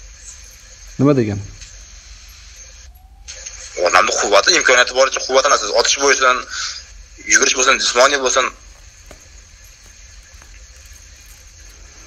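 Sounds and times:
phone line hiss and hum: 0.0 - 12.0.

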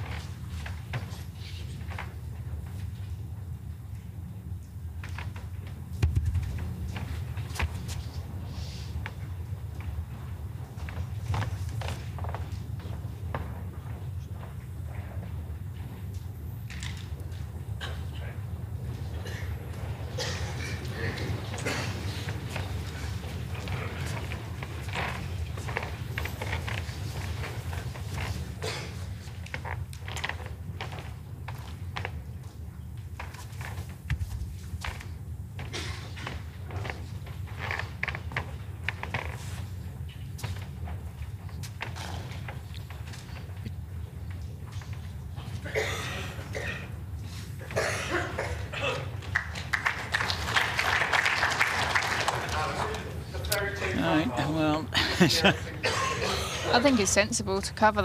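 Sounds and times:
steady low hum: 0.0 - 51.2
shuffling footsteps: 5.1 - 16.4, 18.6 - 46.2.

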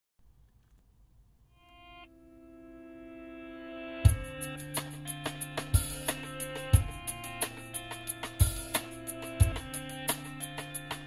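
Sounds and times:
sustained chords from car stereo: 1.6 - 11.0.

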